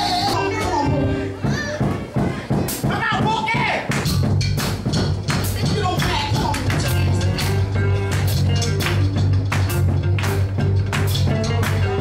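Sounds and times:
female vocal group singing: 0:00.0 - 0:01.4
electric guitar and band: 0:04.2 - 0:12.0.

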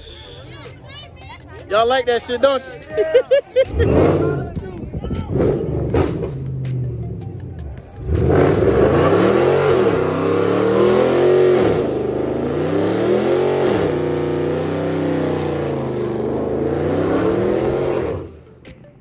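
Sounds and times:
tire noise: 0:00.0 - 0:19.0
car engine revving: 0:03.6 - 0:18.6.

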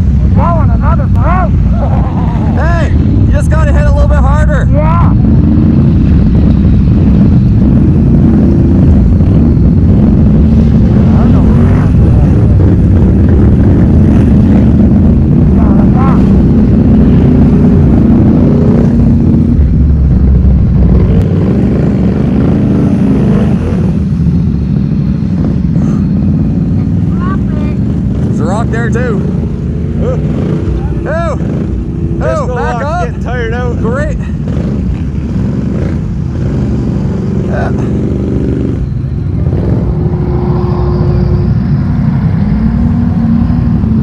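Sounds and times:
atv engines revving: 0:00.0 - 0:44.0.

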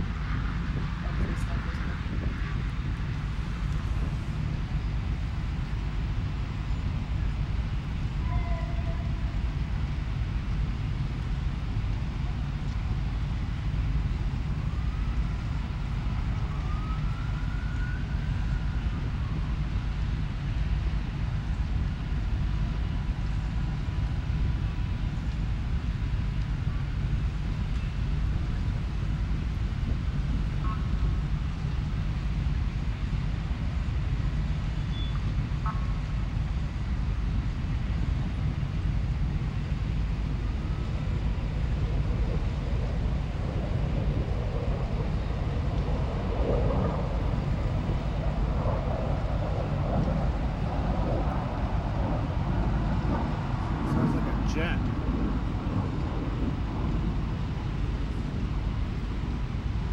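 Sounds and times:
low outdoor rumble: 0:00.0 - 0:59.9
distant siren wailing: 0:06.6 - 0:09.8, 0:13.6 - 0:21.1, 0:40.1 - 0:58.8.

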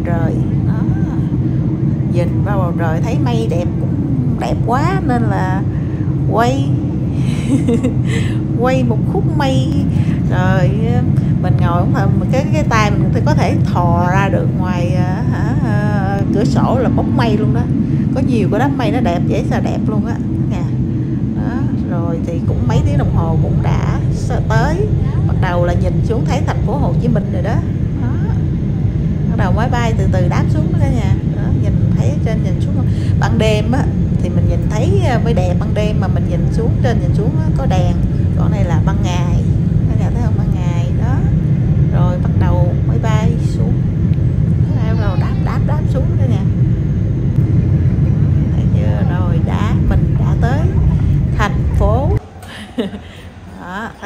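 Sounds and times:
jet cabin engine rumble: 0:00.0 - 0:54.0
rushing air: 0:00.0 - 0:54.0.

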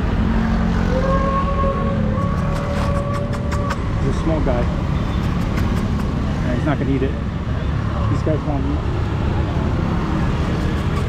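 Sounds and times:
car engines passing: 0:00.0 - 0:11.0
motorbike engines passing: 0:00.0 - 0:11.0
street traffic rumble: 0:00.0 - 0:11.0.

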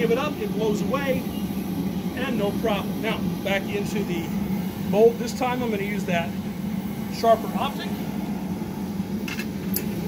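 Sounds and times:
equipment humming: 0:00.0 - 0:10.0.

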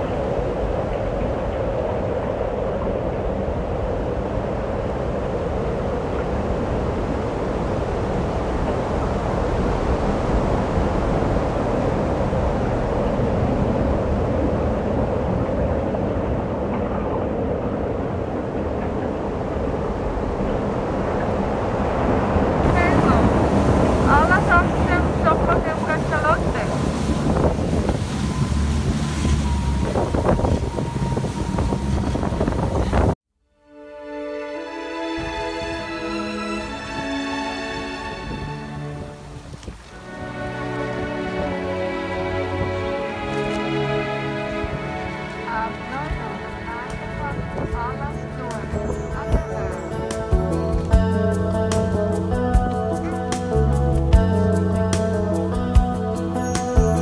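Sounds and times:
water noise from moving boat: 0:00.0 - 0:33.2, 0:34.3 - 0:57.0
wind on microphone: 0:00.0 - 0:33.2, 0:35.1 - 0:57.0
faint passengers' voices: 0:22.6 - 0:26.9, 0:40.2 - 0:50.3.

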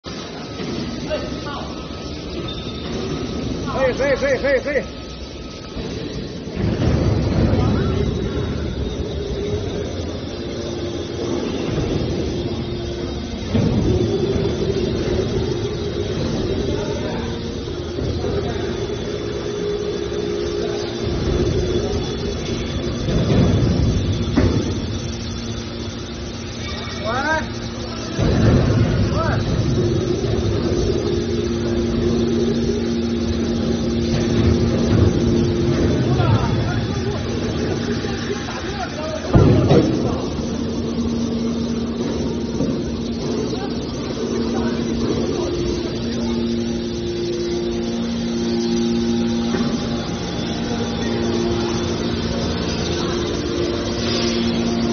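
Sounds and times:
faint steady whine: 0:00.0 - 0:54.9
hydraulic power unit humming: 0:00.0 - 0:54.9.

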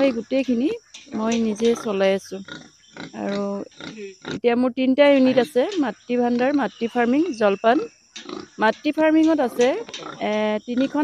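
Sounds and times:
woman speaking: 0:00.0 - 0:02.4, 0:03.2 - 0:03.7, 0:04.3 - 0:07.9, 0:08.6 - 0:11.0.

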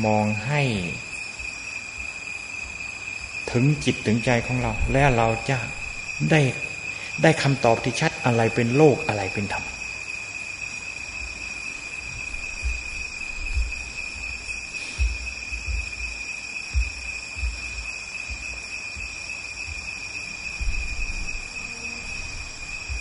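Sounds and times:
high-pitched whine: 0:00.0 - 0:23.0
soft low thumps: 0:01.3 - 0:03.4, 0:04.3 - 0:06.2, 0:11.0 - 0:23.0.

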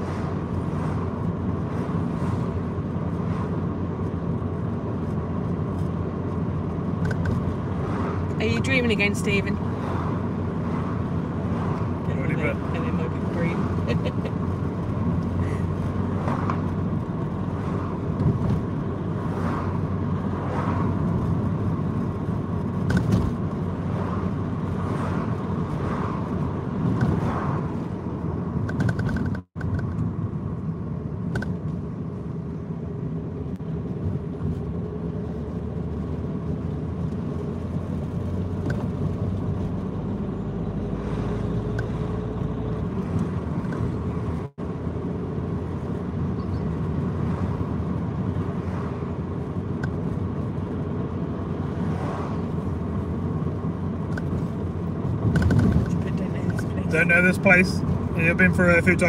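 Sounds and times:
engine and tyre rumble: 0:00.0 - 0:59.0.

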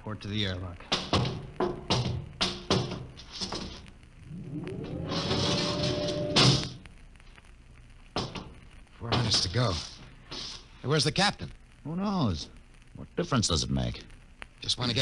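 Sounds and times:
rising mechanical whine: 0:04.2 - 0:06.8
hiss: 0:09.6 - 0:10.8.

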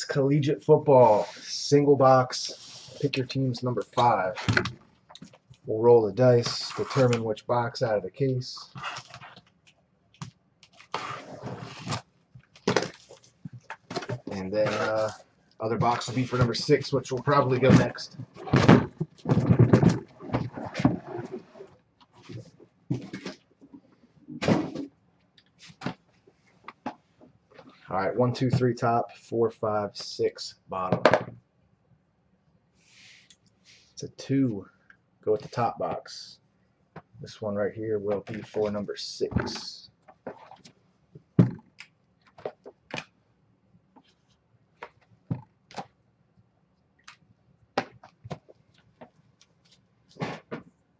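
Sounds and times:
cardboard scraping and rustling: 0:10.8 - 0:15.2, 0:15.8 - 0:23.4.

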